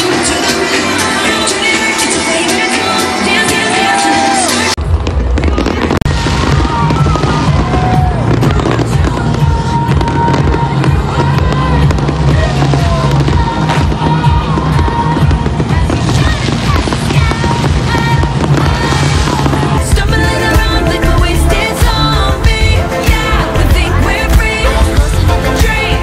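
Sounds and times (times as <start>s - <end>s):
crowd noise: 0.0s - 26.0s
fireworks going off: 0.0s - 26.0s
music: 0.0s - 26.0s.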